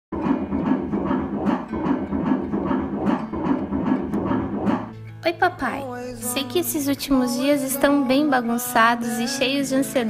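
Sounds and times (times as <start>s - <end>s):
fetal heartbeat on doppler: 0.2s - 5.0s.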